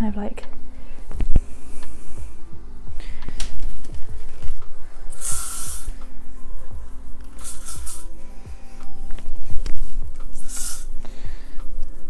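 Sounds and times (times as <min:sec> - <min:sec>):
aerosol hairspray hiss: 0:05.0 - 0:06.2, 0:07.2 - 0:09.0, 0:10.0 - 0:11.8
background music with a beat: 0:05.8 - 0:12.0.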